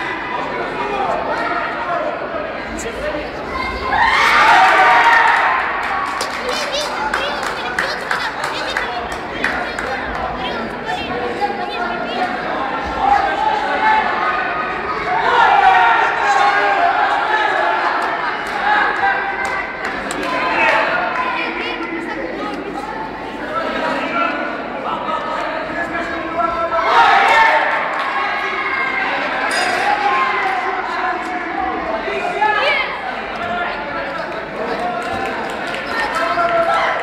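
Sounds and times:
spectators chattering: 0.0 - 37.0.

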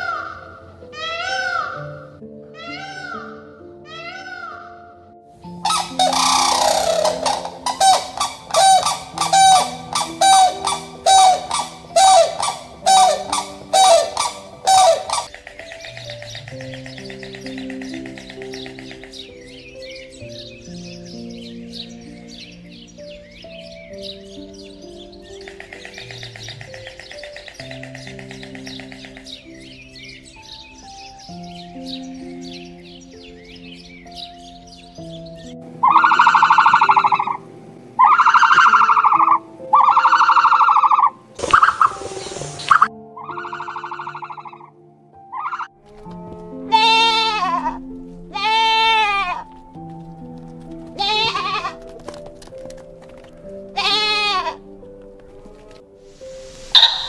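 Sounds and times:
soft piano music: 0.0 - 57.0
loud even calls: 5.6 - 19.4, 35.8 - 37.4, 38.0 - 42.0, 56.3 - 57.0
goat bleating: 46.7 - 49.5, 51.0 - 51.8, 53.8 - 54.6
short hiss: 56.2 - 57.0.

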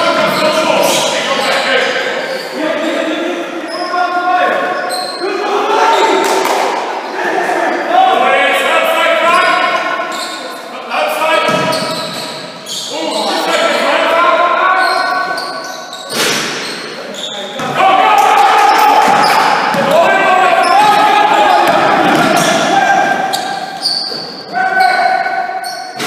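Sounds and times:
players' voices calling out: 0.0 - 26.0
ball bouncing on wooden court: 11.4 - 12.3, 19.0 - 20.0, 20.7 - 22.7.

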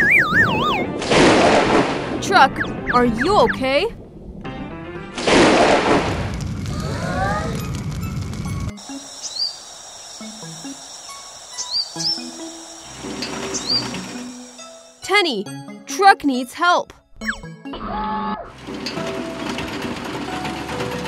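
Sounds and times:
bird chirps: 8.8 - 14.6.

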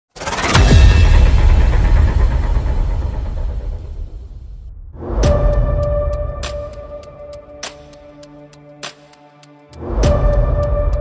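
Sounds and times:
deep low rumbling boom: 0.6 - 5.7.

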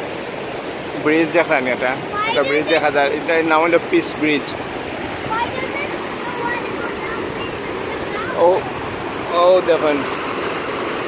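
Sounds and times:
river water rushing: 0.0 - 11.0
water washing against shore: 0.0 - 11.0.

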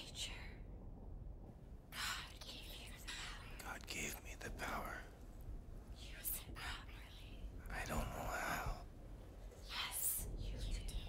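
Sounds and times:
faint low hum: 0.0 - 11.0
person whispering: 2.0 - 5.1, 6.0 - 8.8, 9.6 - 11.0.

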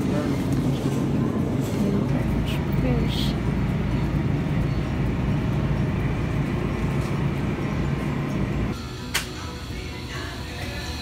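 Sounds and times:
low rumble of store background: 0.0 - 11.0.

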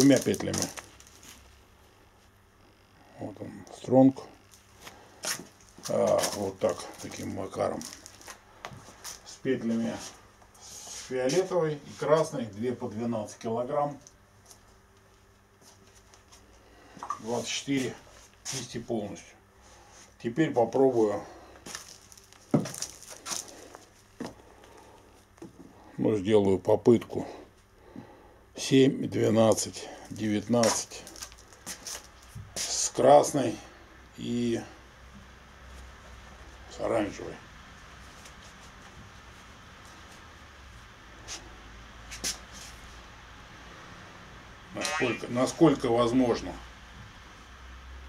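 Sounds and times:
rubber bands rustling and slapping: 0.0 - 1.4
low room hum: 0.0 - 48.0.

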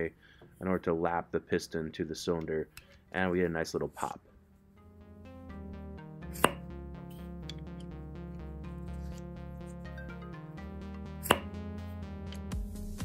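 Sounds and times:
background music: 4.2 - 13.0.

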